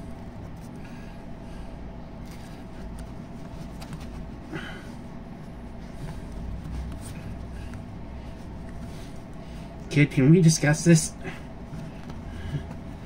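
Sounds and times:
steady low hum: 0:00.0 - 0:13.0
faint rustles: 0:00.1 - 0:09.9.

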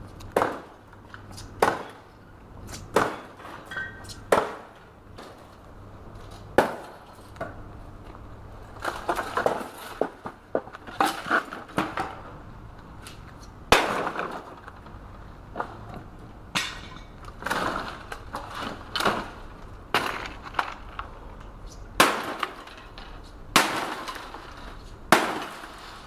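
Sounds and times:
sledgehammer striking wood: 0:00.3 - 0:00.8, 0:01.6 - 0:02.0, 0:02.9 - 0:03.6, 0:04.3 - 0:05.4, 0:06.6 - 0:07.0, 0:13.7 - 0:14.5, 0:22.0 - 0:22.8, 0:23.5 - 0:24.4, 0:25.1 - 0:25.8
wood cracking and splintering: 0:08.7 - 0:12.1, 0:17.2 - 0:26.0.

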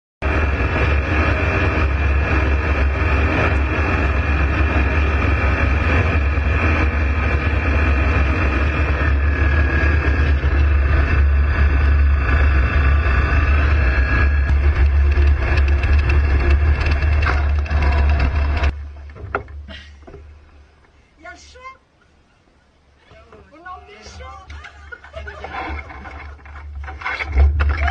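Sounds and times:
ultralight aircraft engine drone: 0:00.2 - 0:20.4.

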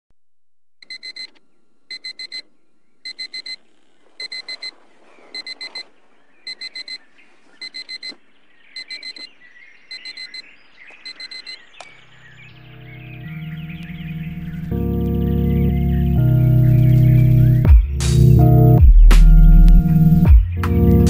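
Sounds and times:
digital alarm clock beeping: 0:03.1 - 0:03.6, 0:04.2 - 0:04.7, 0:05.4 - 0:05.8, 0:06.5 - 0:07.0, 0:07.6 - 0:08.1, 0:08.8 - 0:09.3, 0:09.9 - 0:10.4, 0:11.1 - 0:11.6.

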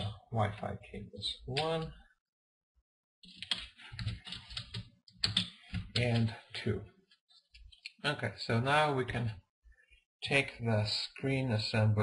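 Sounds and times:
cables clicking and rattling: 0:03.2 - 0:06.4.

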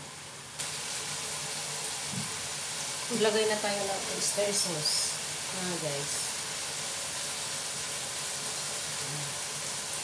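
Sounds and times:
chicken sizzling in a wok: 0:00.0 - 0:10.0.

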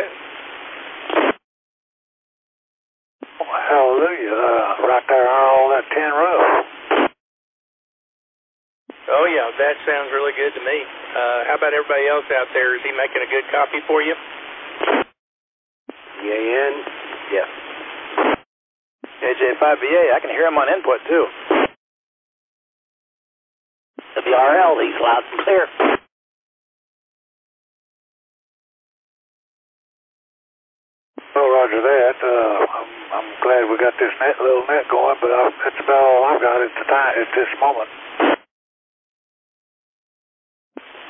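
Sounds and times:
radio voice over hiss: 0:03.4 - 0:06.6, 0:09.0 - 0:14.2, 0:16.2 - 0:17.5, 0:19.1 - 0:21.7, 0:24.0 - 0:26.0, 0:31.2 - 0:38.4.

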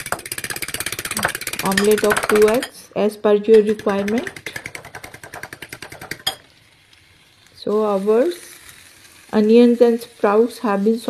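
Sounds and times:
fork beating eggs in bowl: 0:00.0 - 0:02.8, 0:03.5 - 0:06.4.

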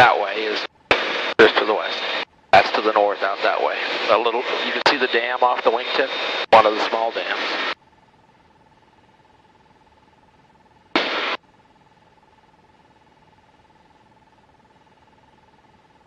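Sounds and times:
thin electrical whine: 0:00.0 - 0:16.0.

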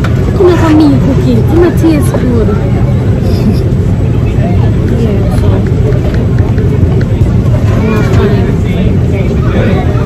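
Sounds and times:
airliner engine drone: 0:00.0 - 0:10.0
faint voices: 0:00.0 - 0:10.0.

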